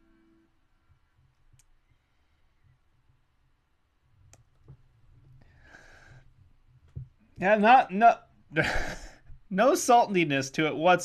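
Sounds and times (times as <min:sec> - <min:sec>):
breathy exhale: 0:05.5 - 0:06.2.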